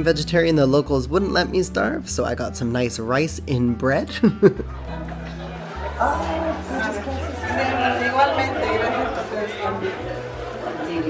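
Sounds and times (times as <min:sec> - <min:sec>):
crowd chatter: 0:04.6 - 0:11.0.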